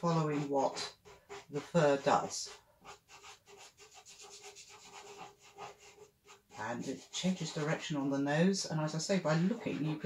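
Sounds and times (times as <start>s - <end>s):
pastel scratching on paper: 0.0s - 7.9s.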